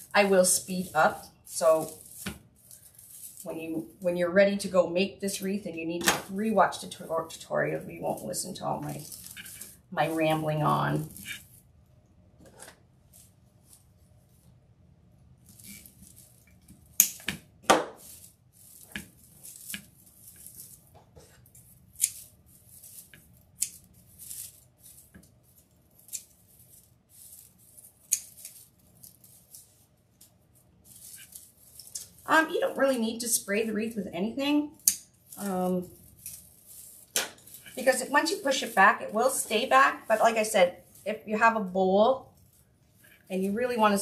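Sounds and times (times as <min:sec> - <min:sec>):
handling of mesh: 0:00.0 - 0:04.1, 0:06.2 - 0:44.0
scissors snipping: 0:21.5 - 0:22.3, 0:28.0 - 0:28.6.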